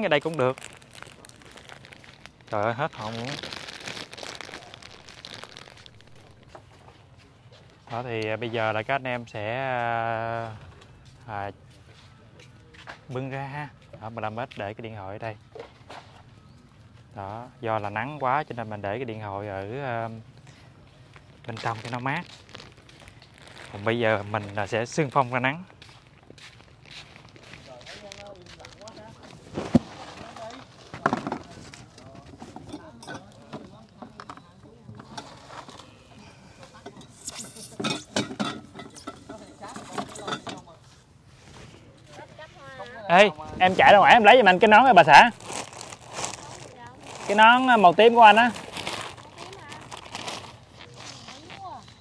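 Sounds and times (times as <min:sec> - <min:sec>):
plastic wrapping crinkling: 0:00.0 - 0:07.0, 0:20.4 - 0:32.7, 0:43.6 - 0:52.0
footsteps scuffing on paving: 0:25.7 - 0:28.7.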